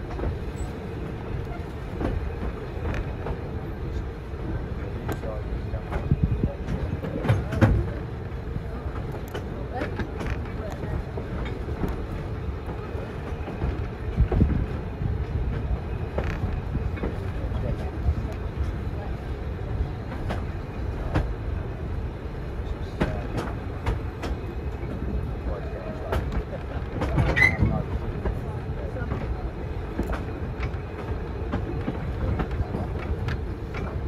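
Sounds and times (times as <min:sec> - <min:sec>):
train carriage rumbling: 0:00.0 - 0:34.0
wheels clicking on rails: 0:00.0 - 0:34.0.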